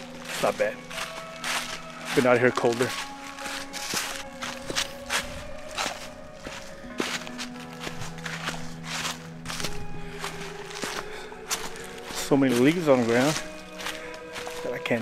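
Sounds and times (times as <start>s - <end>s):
background music with held notes: 0.0s - 15.0s
footsteps crunching dry leaves: 0.0s - 15.0s.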